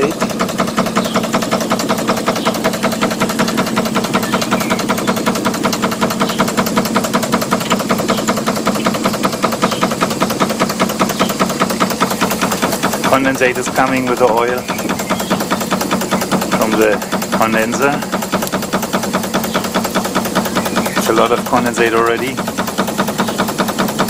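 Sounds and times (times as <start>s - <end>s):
steam engine running: 0.0s - 24.0s.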